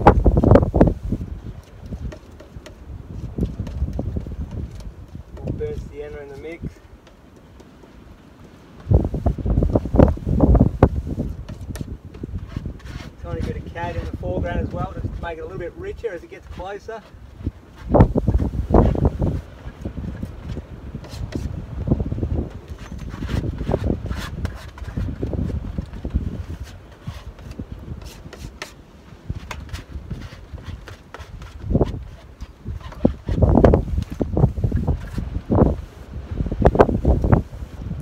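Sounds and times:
gusty wind buffeting microphone: 0:00.0 - 0:07.0, 0:08.0 - 0:38.0.

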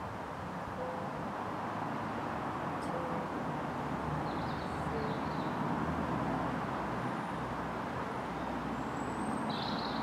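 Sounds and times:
road traffic rumble: 0:00.0 - 0:10.0
bird chirps: 0:04.2 - 0:05.6, 0:08.4 - 0:10.0.

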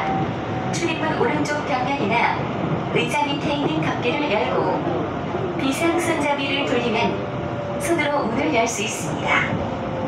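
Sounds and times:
people's voices: 0:00.0 - 0:09.6
train wheels rumbling on rail: 0:00.0 - 0:10.0.

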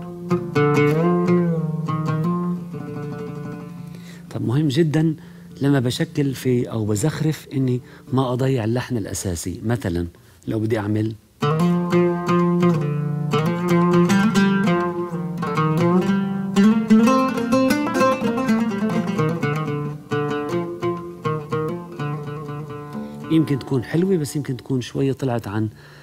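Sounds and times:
oud playing plucked notes: 0:00.0 - 0:08.8, 0:11.4 - 0:25.6.

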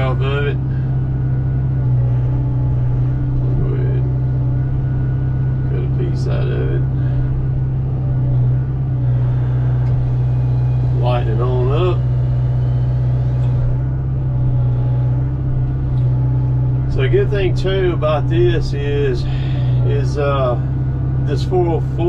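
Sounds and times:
excavator engine and hydraulics: 0:00.0 - 0:22.0.

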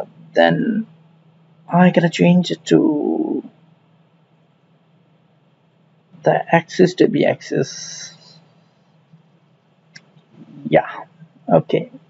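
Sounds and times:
man's voice: 0:00.0 - 0:00.8, 0:01.7 - 0:03.5, 0:06.2 - 0:08.3, 0:10.4 - 0:11.9
low steady hum: 0:00.0 - 0:12.0.

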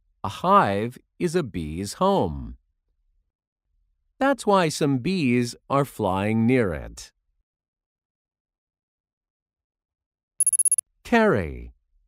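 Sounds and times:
high trilling bell ring: 0:10.4 - 0:10.8.

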